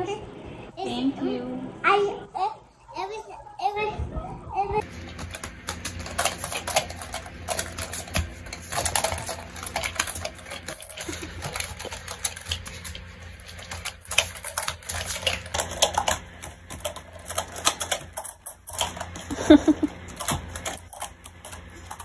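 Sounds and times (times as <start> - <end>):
small balls clicking together: 4.9 - 22.0.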